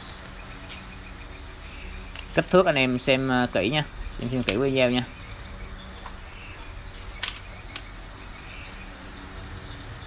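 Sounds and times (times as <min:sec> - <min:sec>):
low outdoor background: 0:00.0 - 0:10.0
sharp clicks: 0:05.4 - 0:07.9.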